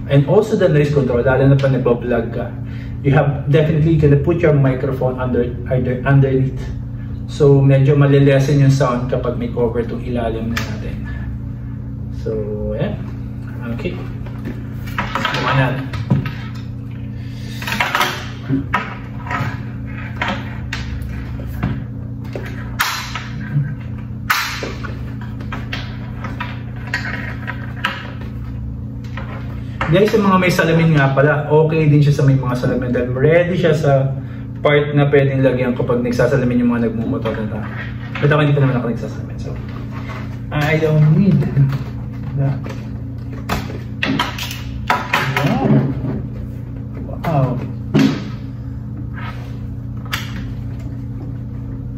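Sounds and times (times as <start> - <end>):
steady low hum: 0.0 - 51.9.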